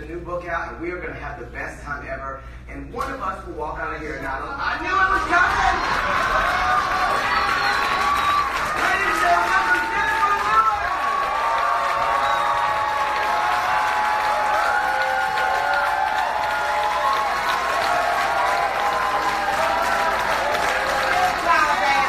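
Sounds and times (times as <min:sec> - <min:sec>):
audience cheering: 0:04.8 - 0:22.0
audience applauding: 0:04.9 - 0:22.0.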